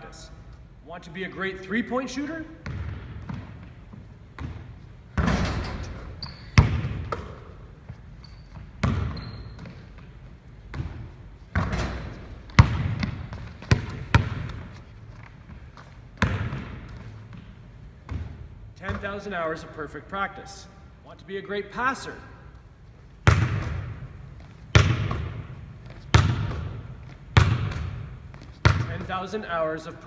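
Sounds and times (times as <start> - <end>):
basketball bouncing on wooden floor: 2.6 - 7.5, 8.3 - 14.8, 15.4 - 19.2, 23.2 - 29.2.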